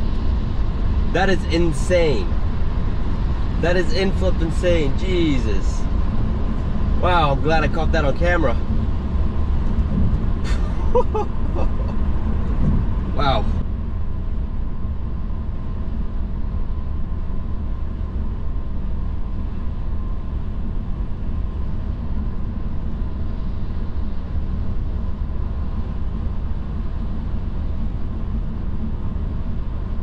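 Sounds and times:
car cabin road rumble: 0:00.0 - 0:13.7.

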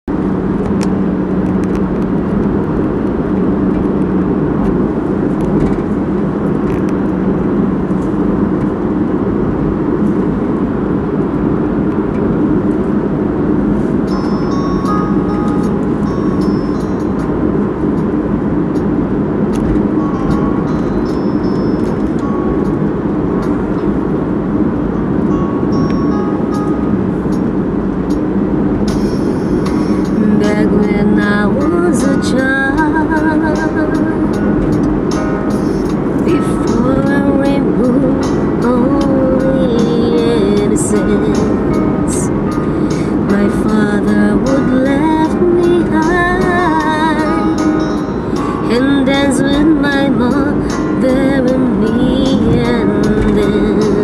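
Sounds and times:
van engine and road noise: 0:00.0 - 0:54.0.

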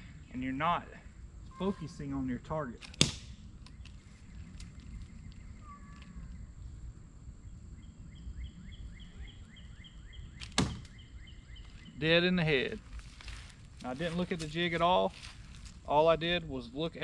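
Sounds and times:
low outdoor rumble: 0:00.0 - 0:17.0
sharp crack: 0:02.8 - 0:03.8, 0:10.4 - 0:11.0
bird chirping: 0:03.4 - 0:12.9.

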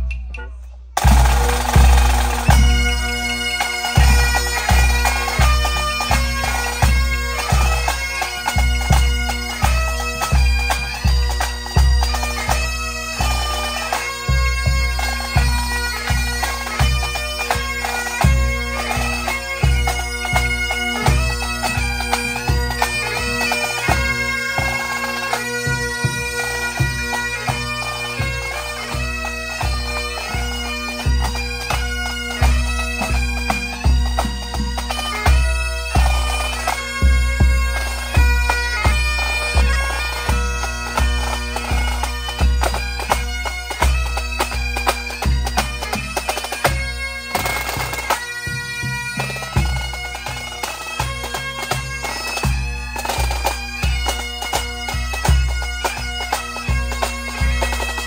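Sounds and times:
snare drums: 0:00.0 - 0:02.8
bagpipes with drones: 0:01.0 - 0:58.0.

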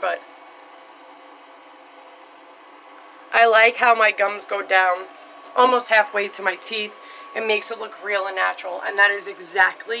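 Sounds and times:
light hum: 0:00.0 - 0:10.0.

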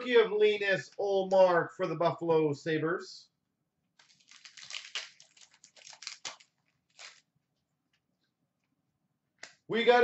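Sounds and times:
card pack wrapper tearing: 0:04.0 - 0:07.3.

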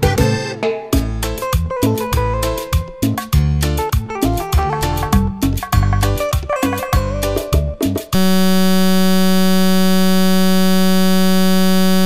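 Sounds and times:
music: 0:00.0 - 0:08.2
loud low electronic buzz: 0:08.2 - 0:12.0.

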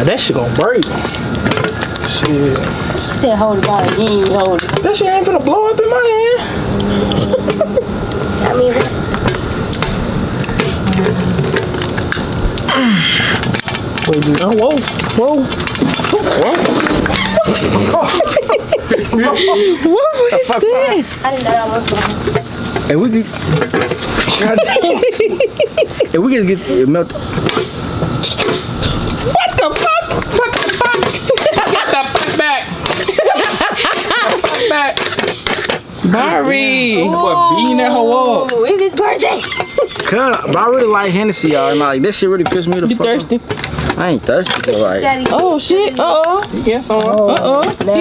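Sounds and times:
men exclaiming and laughing: 0:16.0 - 0:21.0, 0:24.2 - 0:26.8, 0:29.3 - 0:35.1, 0:37.0 - 0:43.2.

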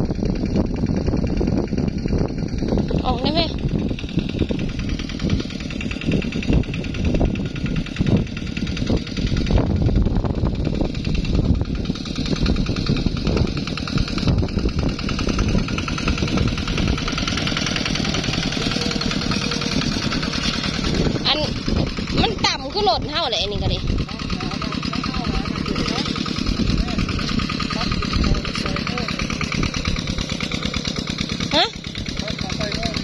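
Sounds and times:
diesel engine chugging under load: 0:00.0 - 0:33.0.

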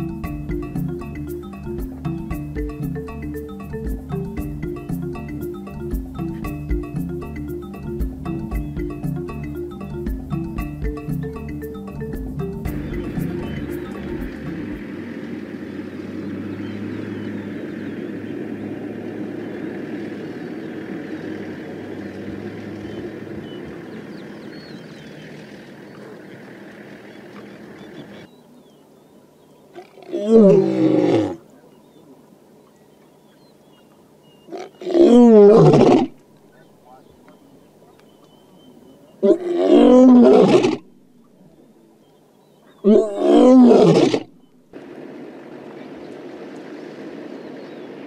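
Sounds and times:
steady background sound: 0:00.0 - 0:25.0
lion roaring: 0:29.8 - 0:31.4, 0:34.5 - 0:36.2, 0:39.2 - 0:40.8, 0:42.8 - 0:44.3.

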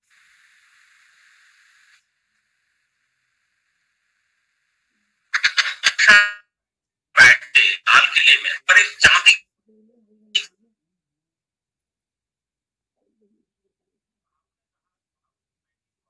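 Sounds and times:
faint hiss: 0:00.0 - 0:06.2
choppy voice fragments: 0:05.4 - 0:06.4, 0:07.2 - 0:09.4.

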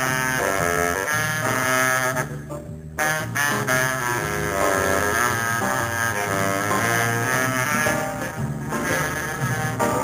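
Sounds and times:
blues band with horn section: 0:00.0 - 0:10.0.

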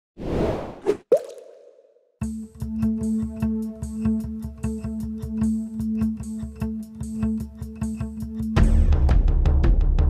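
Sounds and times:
background music with steady beat: 0:02.2 - 0:10.0.

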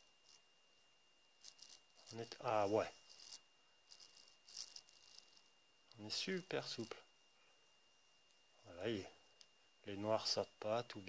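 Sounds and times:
scratchy rattles of gears: 0:01.4 - 0:05.4.

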